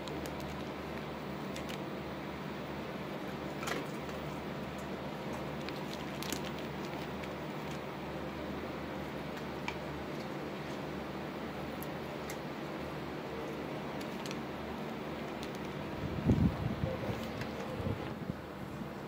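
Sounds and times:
low background hum: 0:00.0 - 0:19.0.

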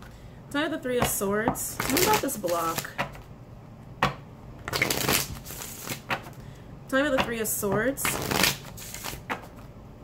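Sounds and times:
cards being shuffled: 0:01.8 - 0:03.2, 0:04.6 - 0:06.4, 0:08.0 - 0:09.7.

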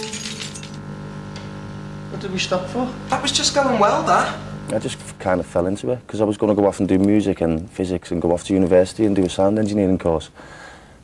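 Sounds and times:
electric guitar chord ringing: 0:00.0 - 0:05.8.

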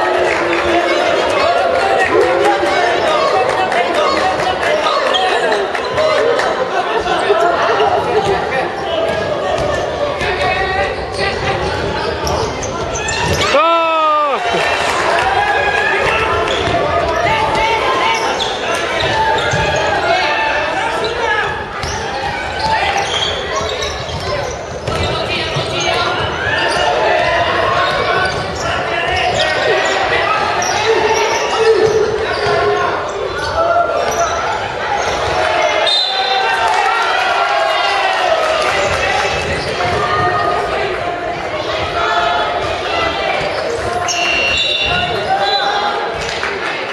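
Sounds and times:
people shouting in a hall: 0:00.0 - 0:46.9.

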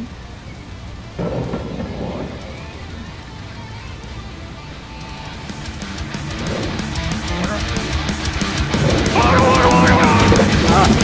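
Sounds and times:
thunder rumbling: 0:01.1 - 0:03.4, 0:06.0 - 0:11.0.

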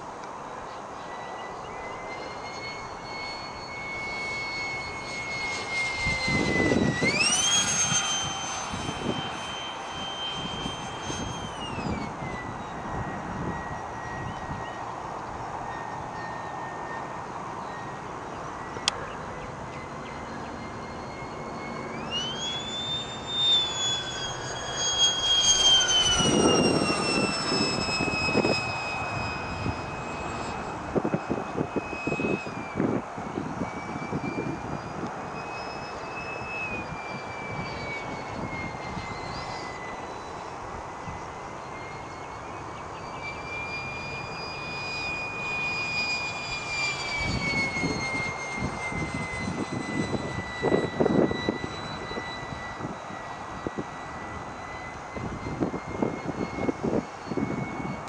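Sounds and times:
electric ducted-fan jet whine: 0:00.0 - 0:58.0.

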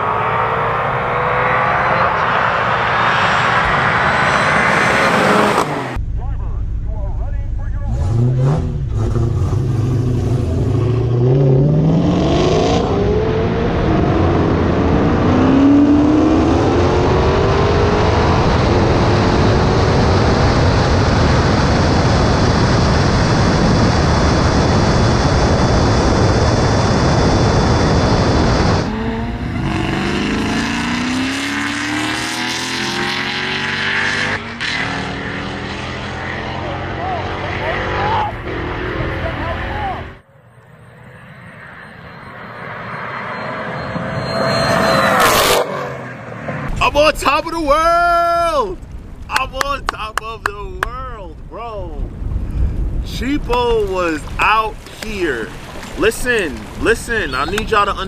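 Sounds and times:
racing car engines revving: 0:00.0 - 0:06.4, 0:07.3 - 0:58.0
wind and road rush: 0:00.0 - 0:07.3, 0:07.9 - 0:58.0.

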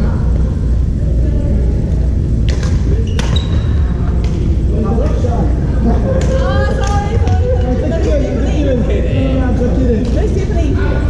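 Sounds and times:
low rumble of hall noise: 0:00.0 - 0:11.0.

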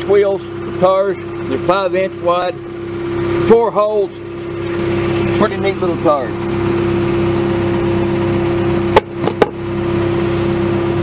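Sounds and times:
steady machine hum: 0:00.0 - 0:11.0.

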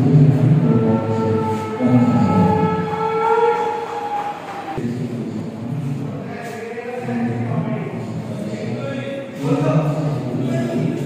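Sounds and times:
steady tones at different pitches: 0:00.0 - 0:11.0.

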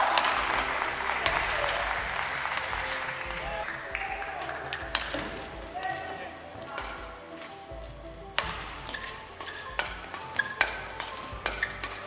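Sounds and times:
applause: 0:00.0 - 0:04.7
racket hitting shuttlecock: 0:00.0 - 0:12.0.

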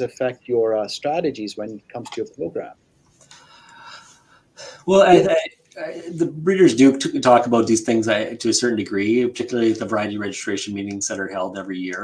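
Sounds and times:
man speaking: 0:00.0 - 0:02.8, 0:04.8 - 0:12.0
man breathing in: 0:03.3 - 0:04.9.

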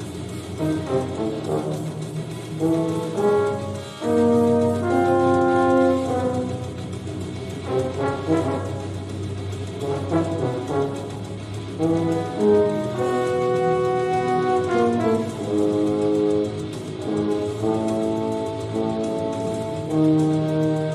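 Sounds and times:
french horn: 0:00.0 - 0:20.9
tuba: 0:00.0 - 0:20.9.

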